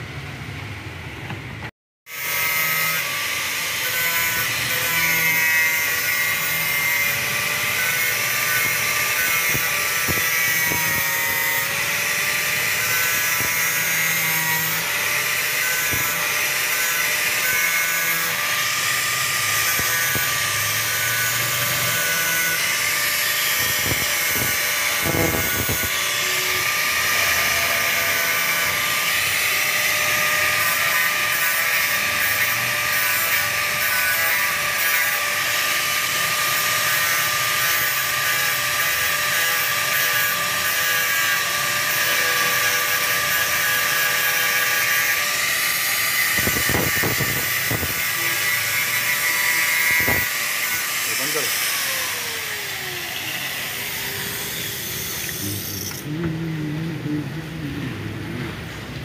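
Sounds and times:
angle grinder cutting metal: 2.1s - 57.6s.

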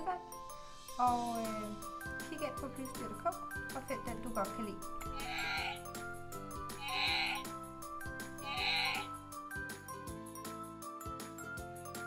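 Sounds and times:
recorded bear roar from toy: 5.1s - 6.0s, 6.7s - 7.5s, 8.4s - 9.2s.

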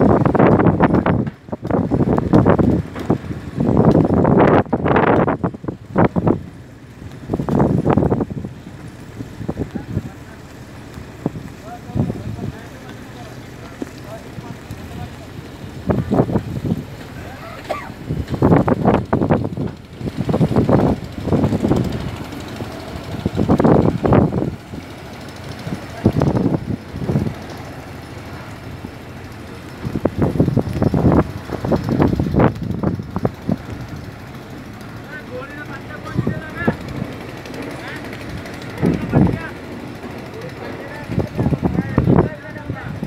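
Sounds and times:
boat engine rumble: 0.0s - 43.0s
voices talking: 7.8s - 43.0s.

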